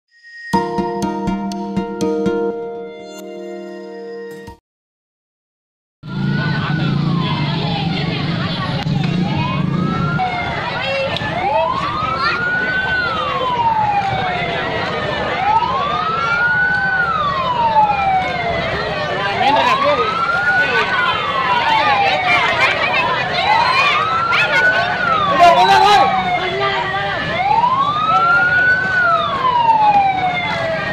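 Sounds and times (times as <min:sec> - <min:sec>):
siren wailing: 0:06.0 - 0:30.9
crowd hubbub: 0:06.1 - 0:30.9.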